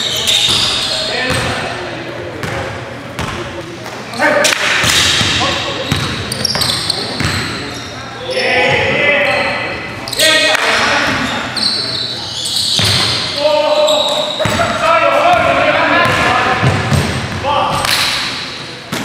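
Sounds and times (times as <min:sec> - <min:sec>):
players calling out: 0:05.2 - 0:18.8.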